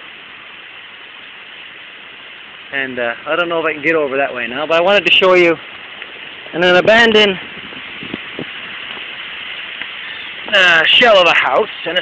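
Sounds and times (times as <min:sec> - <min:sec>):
creek water rushing: 0:00.0 - 0:12.0.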